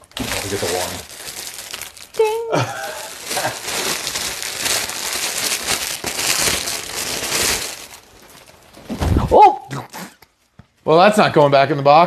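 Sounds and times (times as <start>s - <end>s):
petticoat and packaging crinkling: 0.0s - 9.2s.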